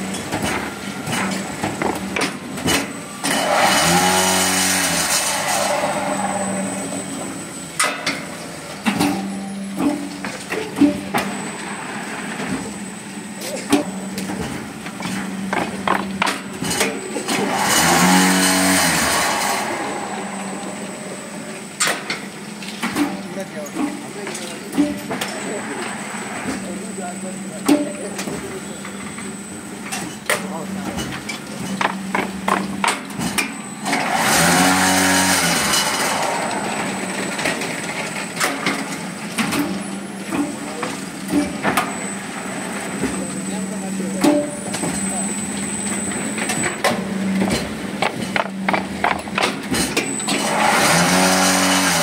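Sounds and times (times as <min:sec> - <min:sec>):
brick making machine humming: 0:00.0 - 0:52.0
machine mechanism knocking: 0:15.0 - 0:16.9, 0:31.7 - 0:33.3, 0:47.4 - 0:50.0.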